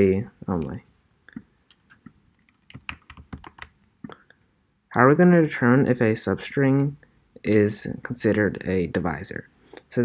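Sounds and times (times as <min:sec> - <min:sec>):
computer keys or mouse clicking: 0:01.9 - 0:04.2.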